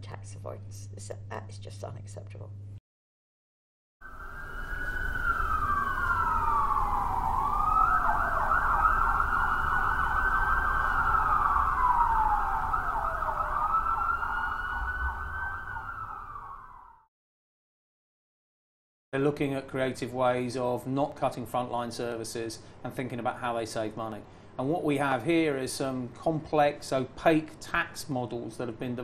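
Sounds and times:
siren wailing: 4.0 - 17.1.

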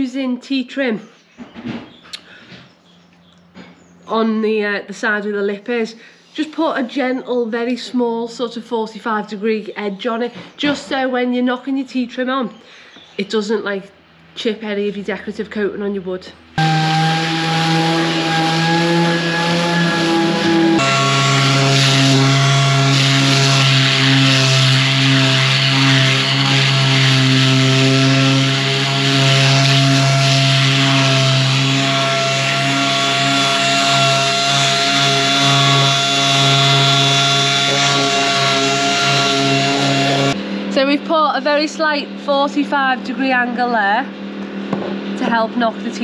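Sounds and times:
orbital sander on wood: 16.6 - 41.2.

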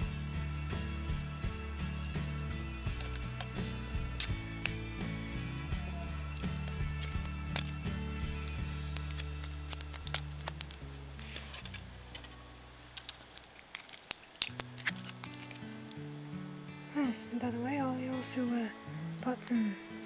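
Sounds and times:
background music: 0.0 - 13.5, 14.5 - 20.0
scissors snipping packing tape: 3.0 - 4.8, 6.6 - 12.4, 13.0 - 15.9.

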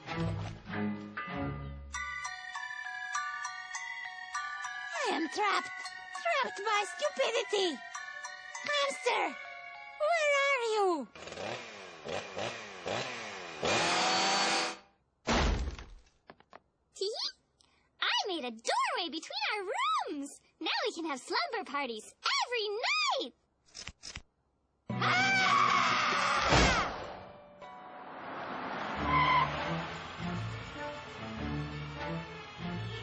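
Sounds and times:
cartoon car rushing in: 28.0 - 32.0
tyres squealing: 28.8 - 30.0.

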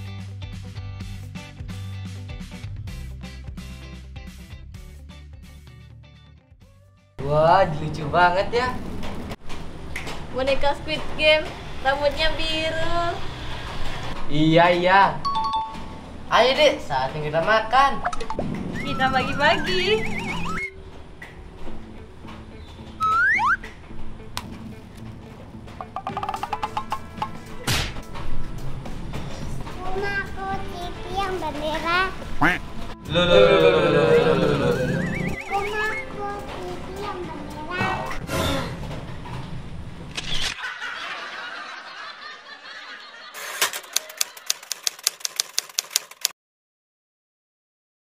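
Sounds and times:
quiet background music: 6.7 - 9.4, 14.4 - 39.9
cartoon rising whistle glides: 18.7 - 20.7, 23.0 - 23.6, 34.6 - 36.0
typewriter key clicks: 43.6 - 46.3.

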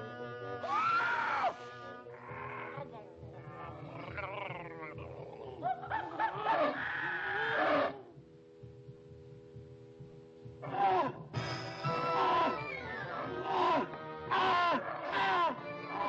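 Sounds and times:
background music: 0.0 - 16.0
cartoon monsters roaring: 3.6 - 8.1, 13.2 - 16.0.

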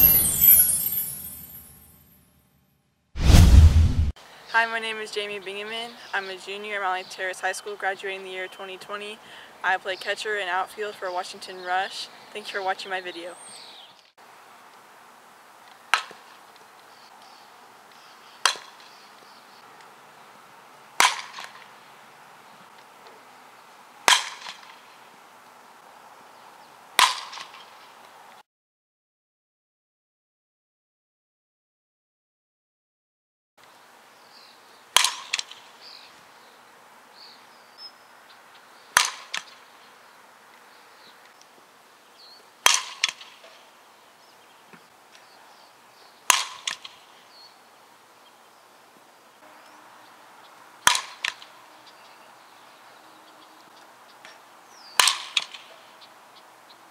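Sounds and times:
bat cracking on softball: 15.9 - 16.2, 18.4 - 18.8, 21.0 - 21.7, 24.0 - 24.8, 27.0 - 27.7, 35.0 - 35.6, 39.0 - 39.6, 42.6 - 43.5, 46.3 - 47.0, 50.8 - 51.5, 55.0 - 55.7
softball bat hitting ball: 27.0 - 27.5, 50.9 - 51.4, 55.0 - 55.6.

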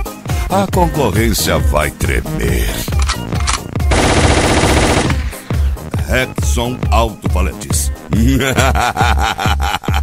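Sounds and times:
machine-gun sound effect: 3.9 - 5.5.

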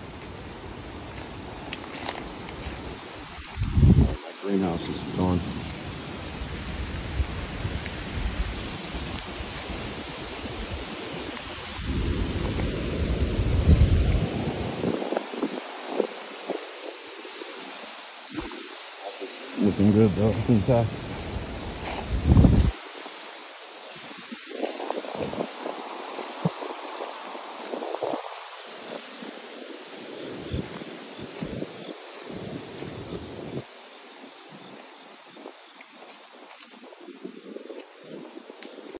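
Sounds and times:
footsteps through wet leaves and gravel: 0.0 - 39.0
wind buffeting microphone: 0.0 - 39.0
steady outdoor rush: 18.2 - 33.7.

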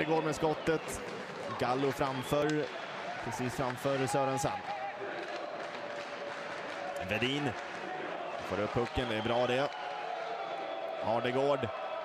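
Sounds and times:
crowd noise in an arena: 0.0 - 12.0.

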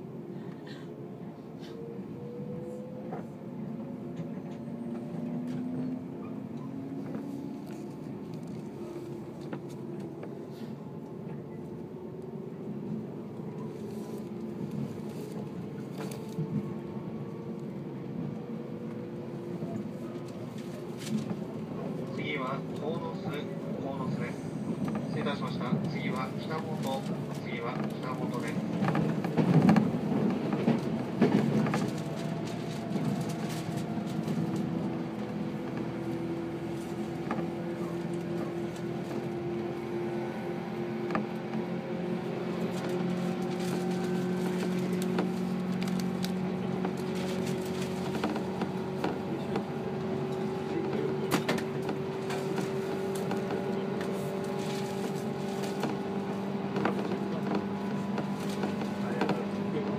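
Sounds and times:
wheels rumbling on rails: 0.0 - 59.9.

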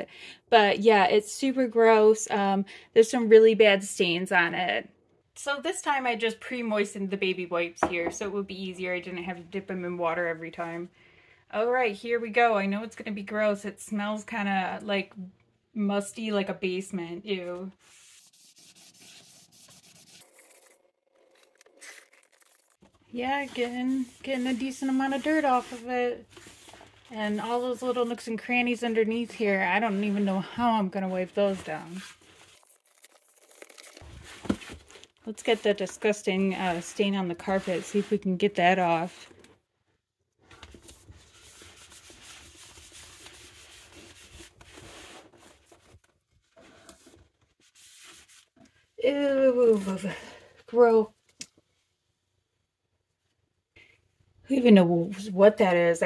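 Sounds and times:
wipe scrubbing vinyl: 17.8 - 20.7, 23.2 - 32.7, 35.3 - 39.2, 40.9 - 45.6, 47.6 - 48.5.

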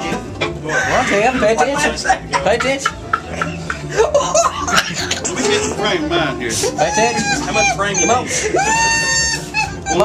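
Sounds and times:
string music: 0.0 - 10.0.

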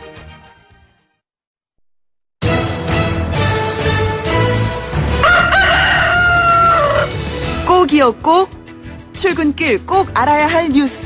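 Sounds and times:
rooster crowing: 5.2 - 7.2.

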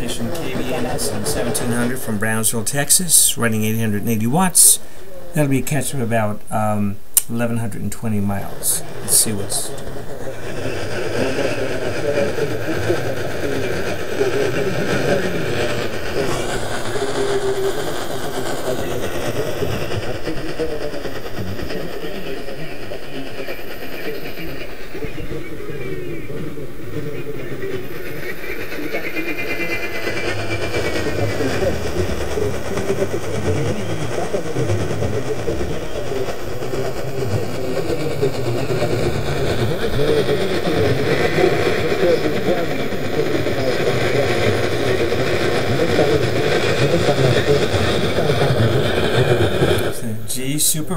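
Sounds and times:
sliding whistling tones: 0.0 - 6.4, 7.3 - 50.9
faint radio talk: 0.0 - 50.9
radio static and hiss: 0.0 - 50.9.

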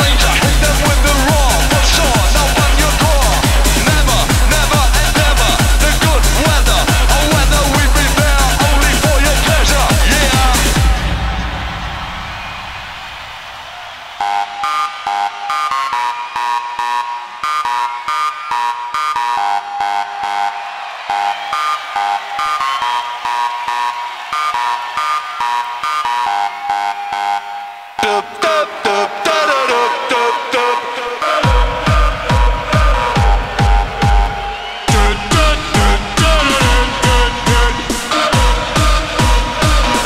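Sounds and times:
choppy synth riff: 0.0 - 13.0, 13.9 - 40.0
electronic dance beat: 0.0 - 40.0.

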